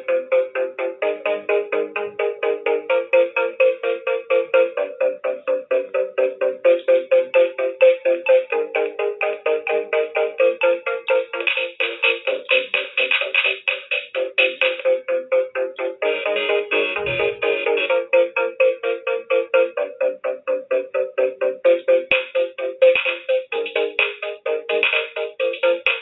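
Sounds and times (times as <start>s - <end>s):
pulsing synth chord house music: 0.0s - 26.0s.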